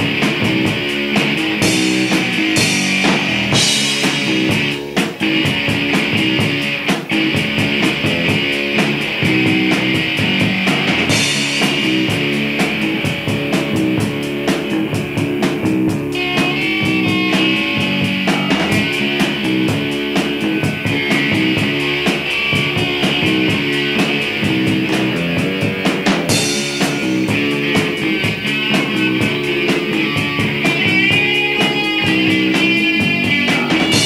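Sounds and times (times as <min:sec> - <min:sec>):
bass guitar: 0:00.0 - 0:34.0
drum kit beat: 0:00.0 - 0:34.0
electric guitars: 0:00.0 - 0:34.0.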